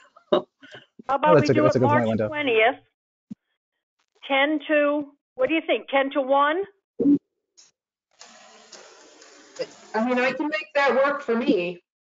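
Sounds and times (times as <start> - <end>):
microphone background hiss: 1.1 - 2.6
clipped spoken word: 1.3 - 2.3.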